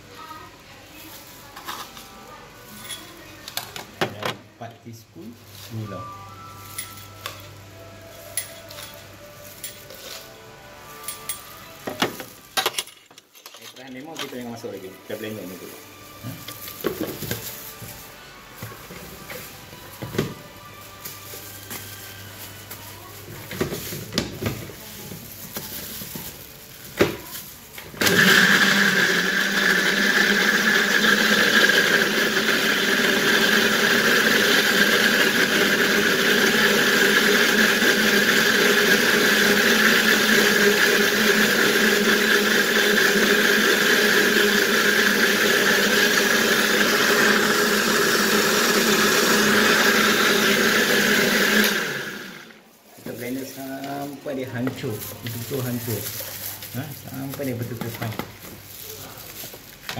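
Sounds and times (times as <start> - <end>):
blender running: 28.0 - 52.6.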